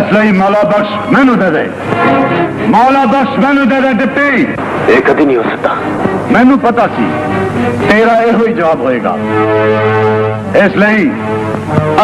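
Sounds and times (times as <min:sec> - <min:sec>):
man speaking through microphone: 0:02.7 - 0:07.2, 0:07.8 - 0:09.3, 0:10.5 - 0:11.2
loud steady pitched tone: 0:09.0 - 0:12.0.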